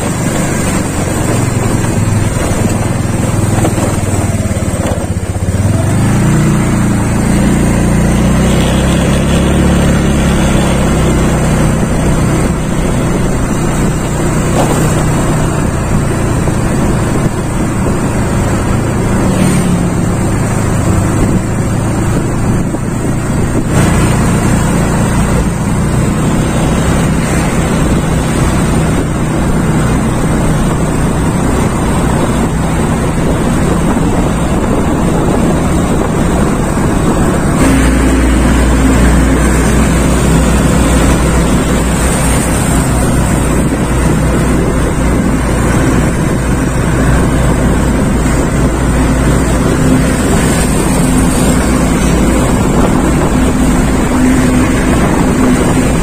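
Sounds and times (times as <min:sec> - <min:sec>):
motorcycle engine hum: 0:00.0 - 0:56.0
wind rushing over microphone: 0:00.0 - 0:56.0.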